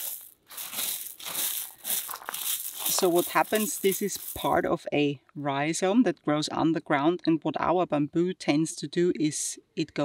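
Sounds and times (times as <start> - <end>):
gravel crunching under hand: 0.0 - 4.7.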